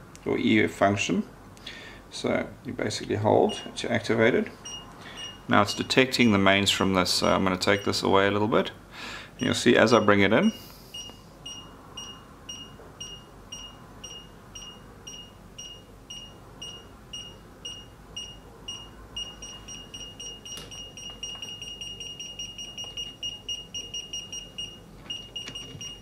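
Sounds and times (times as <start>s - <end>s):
multimeter high-pitched beeping: 4.6s - 6.4s, 10.9s - 26.0s.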